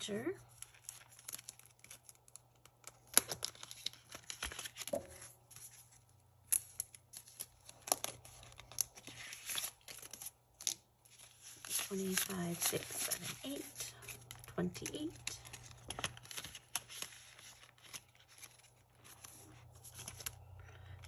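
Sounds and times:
banknotes rustling: 0:00.1 - 0:21.0
plastic envelopes crinkling: 0:00.1 - 0:21.0.

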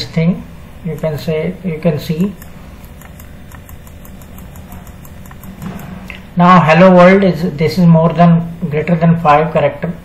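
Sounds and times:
low background hum: 0:00.0 - 0:10.0
mouse button clicking: 0:02.2 - 0:06.2.

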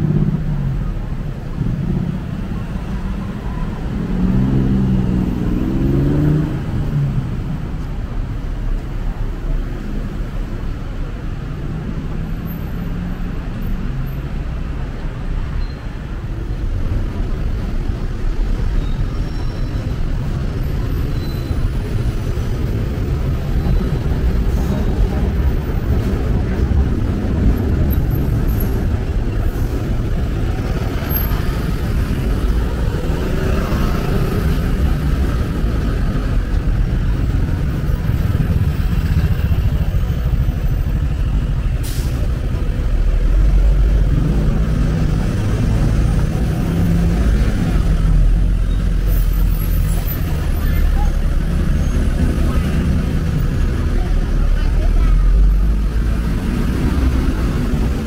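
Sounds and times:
deep rumble of heavy vehicles: 0:00.0 - 0:58.0
passing cars and buses: 0:00.0 - 0:58.0
voices of passers-by: 0:00.0 - 0:58.0.

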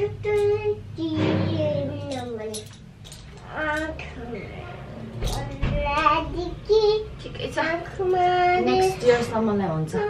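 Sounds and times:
child singing: 0:00.0 - 0:02.7, 0:03.4 - 0:07.3.

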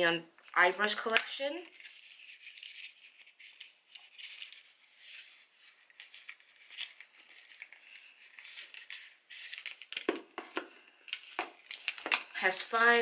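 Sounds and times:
plastic packaging crinkling: 0:01.6 - 0:13.0.

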